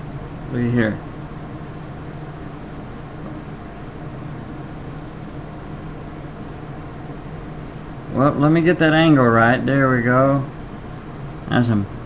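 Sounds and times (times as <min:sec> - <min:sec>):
room noise hiss and hum: 0:00.0 - 0:12.0.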